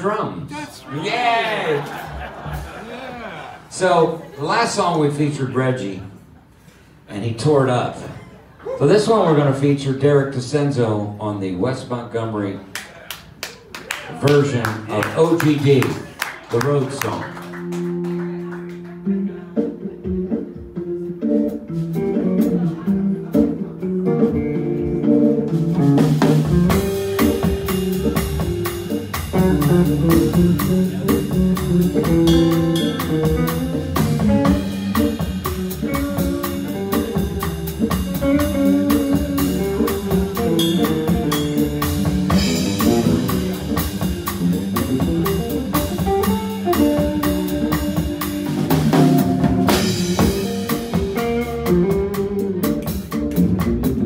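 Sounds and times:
electric guitar: 17.3s - 54.0s
drum kit and cymbals: 19.8s - 54.0s.

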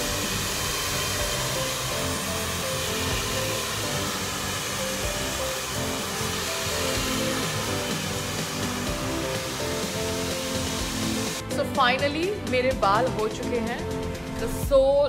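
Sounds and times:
hair dryer blowing: 0.0s - 12.1s
background music: 0.0s - 15.0s.

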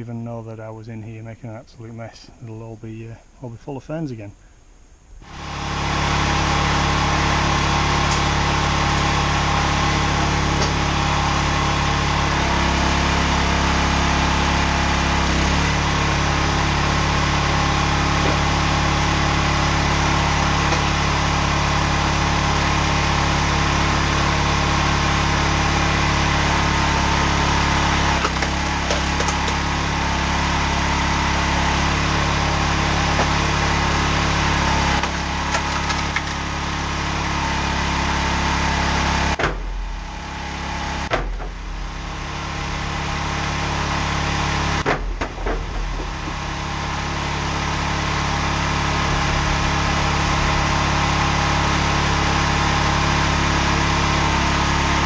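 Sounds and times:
log splitter engine running: 5.2s - 55.0s.

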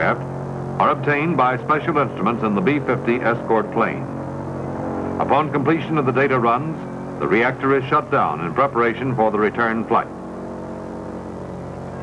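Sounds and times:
aircraft engines droning: 0.0s - 12.0s.

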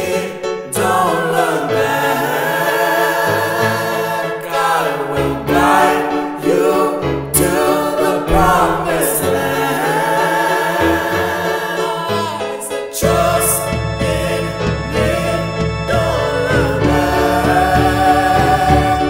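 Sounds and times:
choir-like sung harmonies: 0.0s - 19.0s
bass line: 6.5s - 10.1s, 13.0s - 19.0s.

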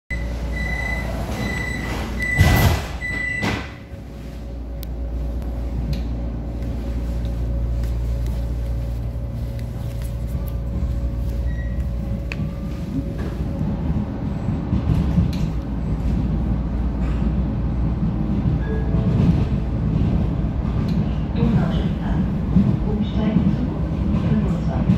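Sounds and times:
train pulling away rumble: 0.1s - 24.9s.

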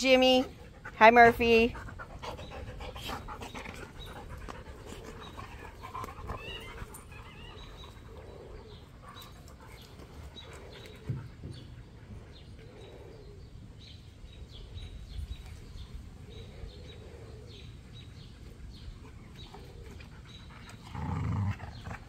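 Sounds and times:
dogs panting: 0.0s - 15.6s, 16.2s - 22.0s.

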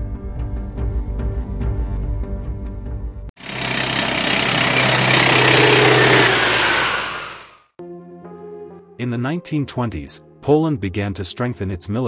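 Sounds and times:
loud rushing sound: 4.5s - 7.6s.

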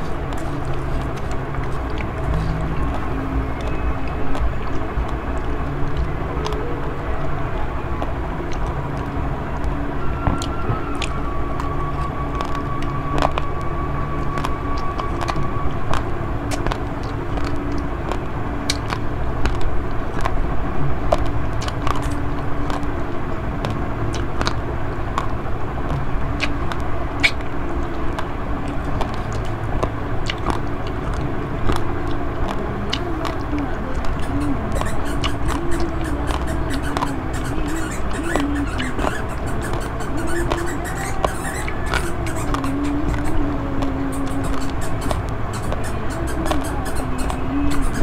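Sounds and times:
close-up chewing: 0.0s - 48.0s
low rumble: 0.0s - 48.0s.

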